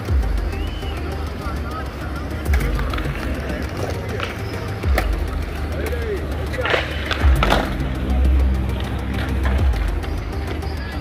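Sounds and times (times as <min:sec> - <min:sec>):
skateboard clacks: 0:00.0 - 0:11.0
skateboard wheels rolling on concrete: 0:00.0 - 0:11.0.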